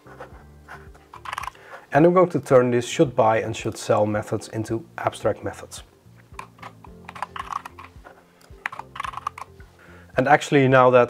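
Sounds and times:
computer keyboard typing: 6.9s - 7.9s, 8.5s - 9.5s.

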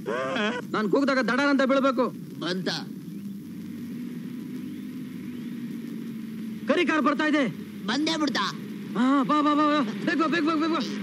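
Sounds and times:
vehicle engine running: 2.9s - 11.0s.

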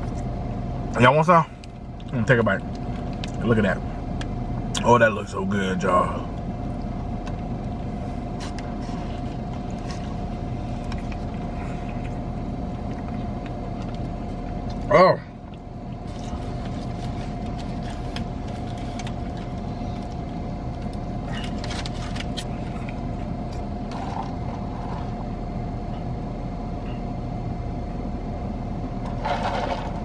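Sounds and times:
faint whine: 0.0s - 30.0s
low hum in car cabin: 0.0s - 30.0s.

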